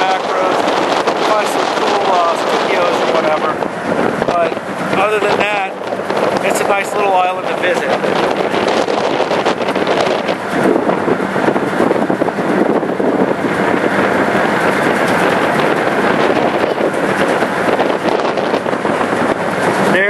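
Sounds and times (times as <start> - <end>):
faint ferry engine hum: 0.0 - 20.0
wind buffeting microphone: 0.0 - 20.0.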